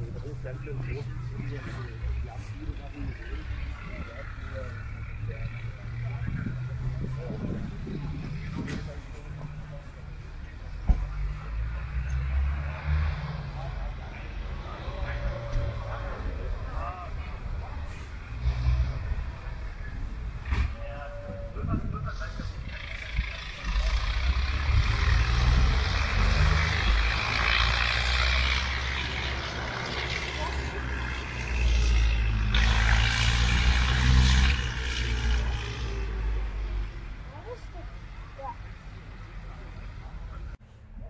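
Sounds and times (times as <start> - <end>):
indistinct voices: 0.0 - 40.6
wind rumble on microphone: 6.0 - 9.7, 18.9 - 23.2.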